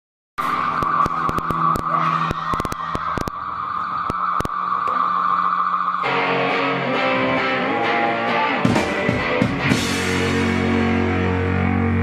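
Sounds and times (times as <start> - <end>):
sharp crackling pops: 0.4 - 6.0
guitar amplifier feedback squeal: 0.4 - 12.0.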